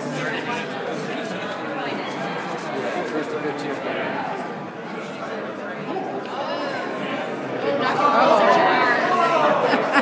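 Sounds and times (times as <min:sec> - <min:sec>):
people chattering in echoing hall: 0:00.0 - 0:10.0.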